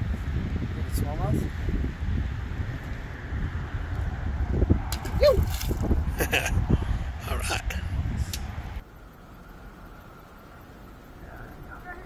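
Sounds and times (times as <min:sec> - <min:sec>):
wind buffeting microphone: 0:00.0 - 0:08.8.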